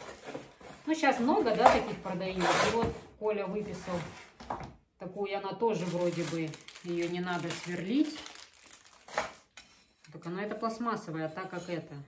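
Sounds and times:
packaging rustling: 0:05.6 - 0:09.6.

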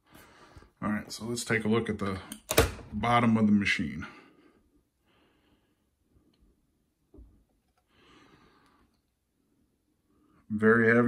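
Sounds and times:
faint breaths: 0:00.0 - 0:00.8, 0:04.0 - 0:06.8, 0:07.7 - 0:10.5.

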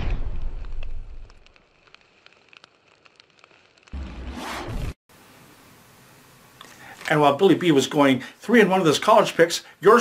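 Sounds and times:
fire crackles: 0:00.0 - 0:10.0.

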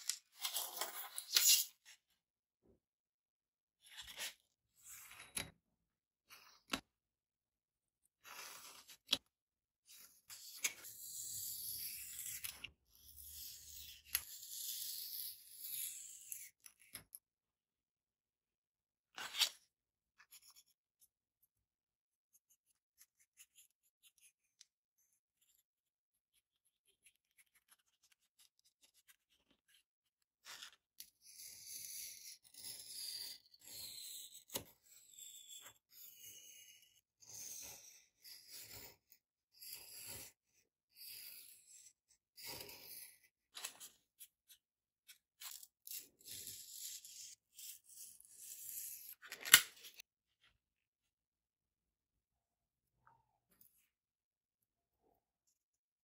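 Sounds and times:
pen scratching on board: 0:22.3 - 0:30.6.

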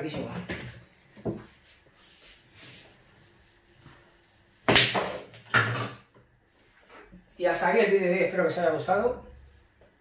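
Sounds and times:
cue ball cracking into balls: 0:04.7 - 0:06.0.

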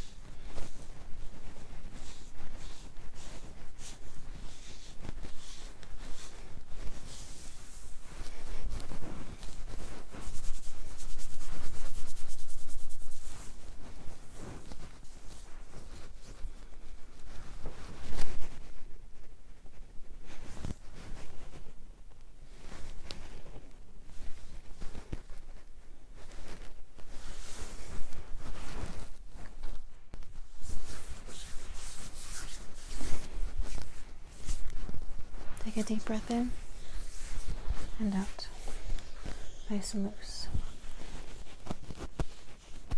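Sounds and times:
fingers rubbing through hair: 0:00.0 - 0:21.8, 0:22.5 - 0:42.9
clothing rustling: 0:00.0 - 0:42.9.

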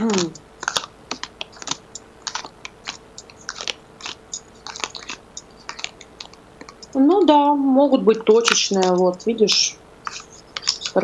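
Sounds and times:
person humming: 0:00.0 - 0:00.4
cards being shuffled: 0:00.0 - 0:07.0, 0:08.3 - 0:11.0.

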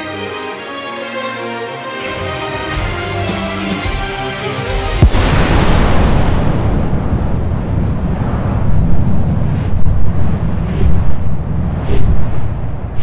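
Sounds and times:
sharp explosion bursts: 0:04.9 - 0:12.7
explosion low rumble: 0:05.0 - 0:13.0.

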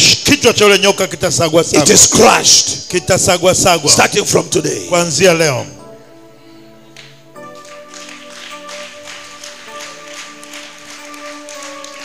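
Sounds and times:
soft keyboard chords: 0:01.8 - 0:12.0.

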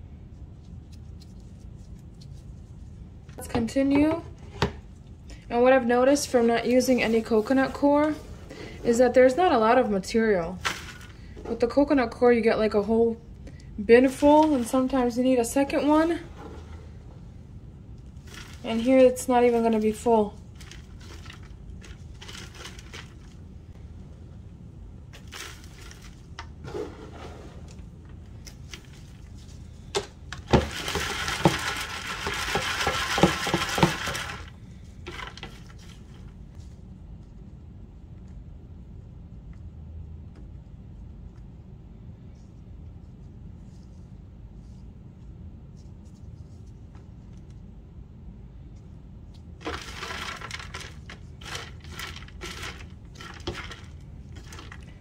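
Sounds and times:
scraping and rattling of sifter: 0:10.6 - 0:11.6, 0:18.2 - 0:23.4, 0:25.1 - 0:27.9, 0:28.5 - 0:36.3, 0:49.6 - 0:55.0
compost rustling on mesh sifter: 0:18.2 - 0:23.4, 0:25.1 - 0:27.8, 0:30.5 - 0:36.2, 0:49.6 - 0:55.0.

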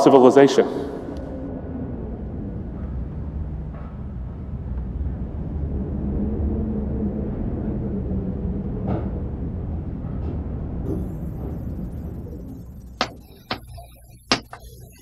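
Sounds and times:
low rumbling drone: 0:00.6 - 0:15.0
faint held tone: 0:10.9 - 0:15.0.

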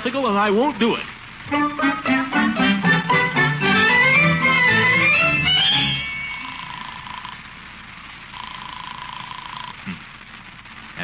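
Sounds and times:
old recording hiss: 0:00.0 - 0:11.0
telephone ringing tone: 0:03.7 - 0:07.4, 0:08.4 - 0:09.7.

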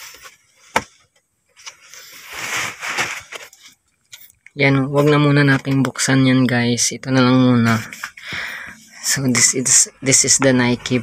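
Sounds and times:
paper bag rustling: 0:01.7 - 0:03.8.

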